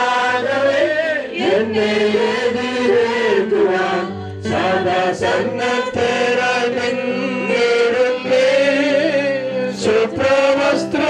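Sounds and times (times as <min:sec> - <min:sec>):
voices singing a slow hymn: 0:00.0 - 0:11.0.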